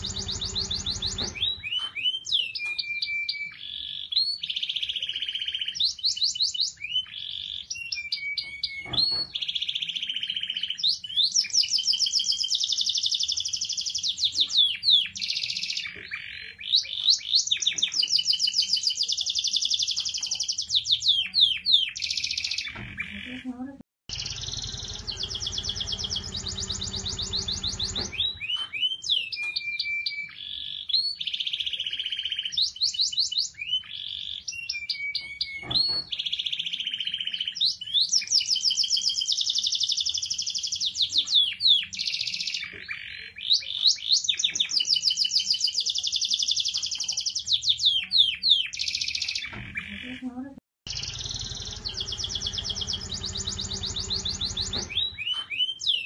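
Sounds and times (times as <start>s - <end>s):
canary singing trills: 0.0s - 56.0s.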